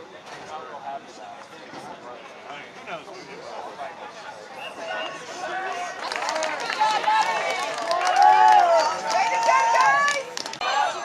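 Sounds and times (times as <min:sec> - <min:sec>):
voices shouting: 0:04.6 - 0:11.0.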